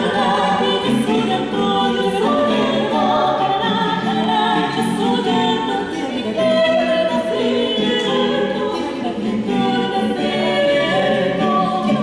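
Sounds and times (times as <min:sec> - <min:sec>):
mixed choir singing a cappella: 0:00.0 - 0:12.0.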